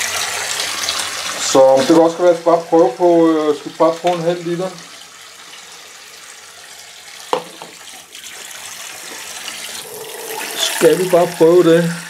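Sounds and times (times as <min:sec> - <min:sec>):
tap running into metal sink: 0:03.7 - 0:04.3, 0:07.3 - 0:09.3.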